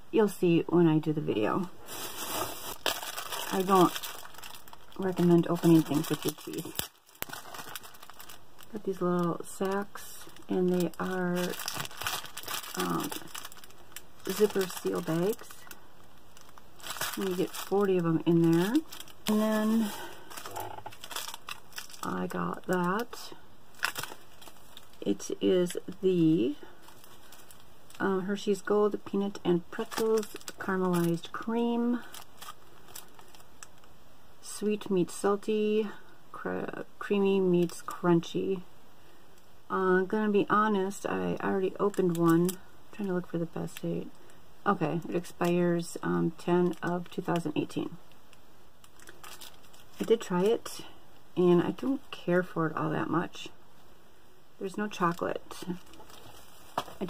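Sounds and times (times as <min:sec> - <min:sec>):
plastic bag crinkling: 0:01.8 - 0:33.9, 0:41.5 - 0:43.8, 0:46.4 - 0:47.8, 0:48.8 - 0:50.7, 0:54.9 - 0:57.0.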